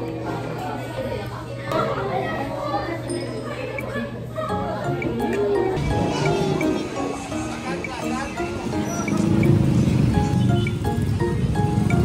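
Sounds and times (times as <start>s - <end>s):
people talking: 0.0s - 10.0s
children's voices: 1.2s - 9.4s.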